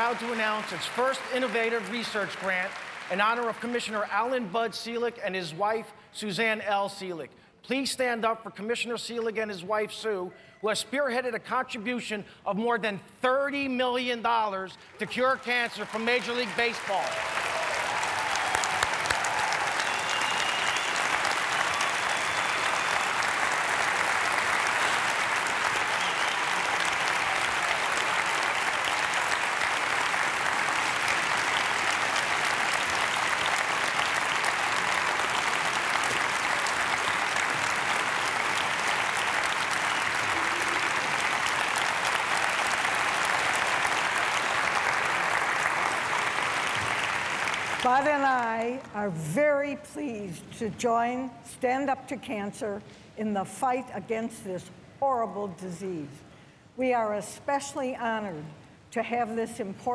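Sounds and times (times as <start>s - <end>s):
audience applauding: 0.0s - 4.3s, 14.9s - 48.9s.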